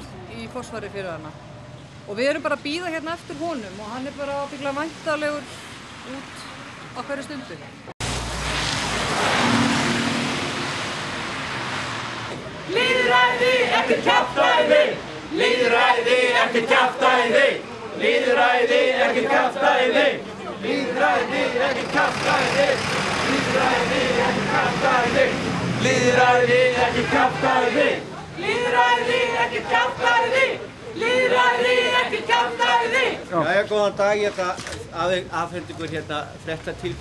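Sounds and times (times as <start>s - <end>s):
tyres hissing on wet road: 3.3s - 6.9s, 8.0s - 31.0s
crowd voices: 12.3s - 33.4s.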